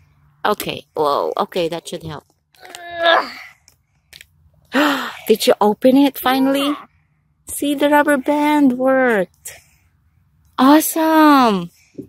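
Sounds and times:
child groaning with effort: 2.6s - 3.5s.

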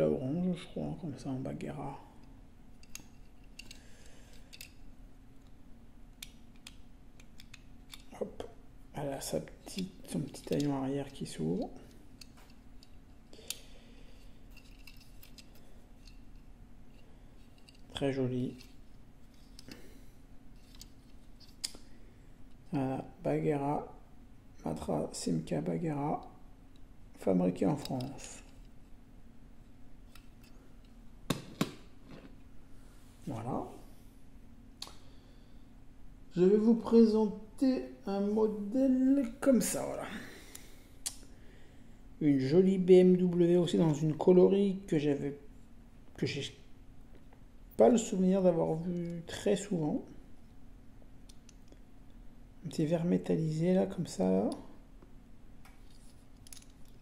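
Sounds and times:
faint steady hum: 0.0s - 57.0s.

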